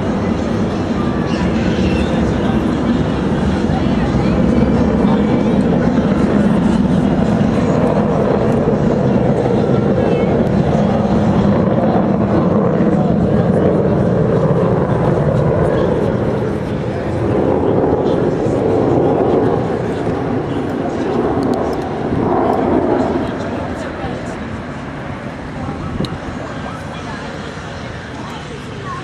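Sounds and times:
jets passing overhead: 0.0s - 29.0s.

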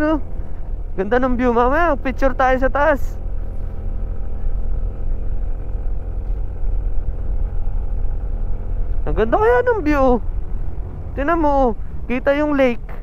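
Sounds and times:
scooter engine running: 0.0s - 13.0s.

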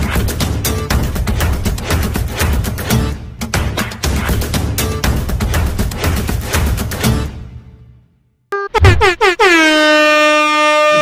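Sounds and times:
air horn blasts: 8.6s - 11.0s.

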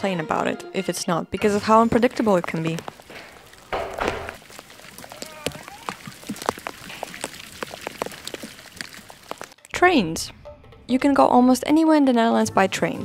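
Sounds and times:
rain hissing: 1.7s - 9.6s
raindrops ticking: 1.7s - 9.8s.

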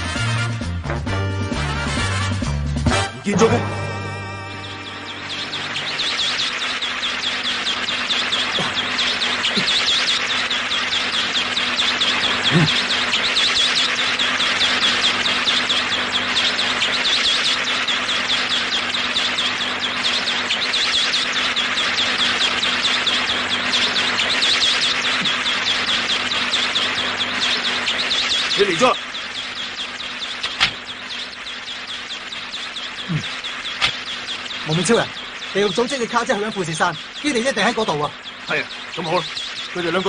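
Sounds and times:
insects chirping: 3.8s - 40.0s.

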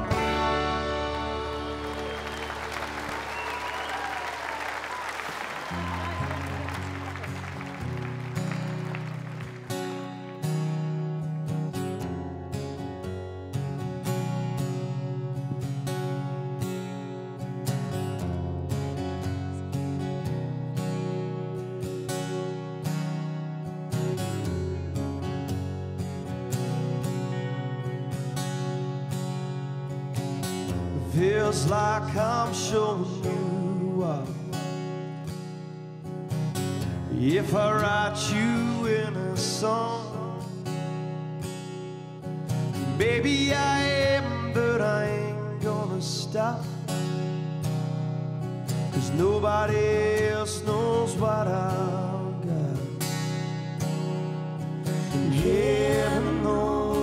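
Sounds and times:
low bass line: 0.0s - 2.3s, 55.0s - 57.0s
acoustic guitar playing: 0.0s - 57.0s
audience applause: 0.8s - 10.4s
man singing: 31.0s - 34.6s, 37.1s - 40.6s, 42.9s - 46.8s, 49.0s - 53.0s, 55.1s - 57.0s.

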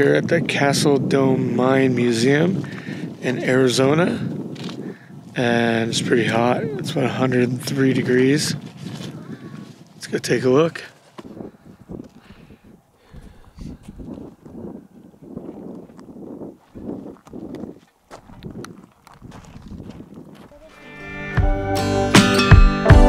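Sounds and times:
footsteps crunching on gravel: 2.5s - 5.4s, 6.2s - 12.5s, 13.4s - 21.0s
acoustic guitar music: 20.5s - 23.0s.

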